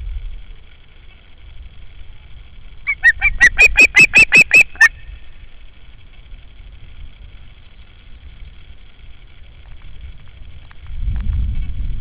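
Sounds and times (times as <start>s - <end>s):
osprey whistled calls: 2.8s - 5.3s.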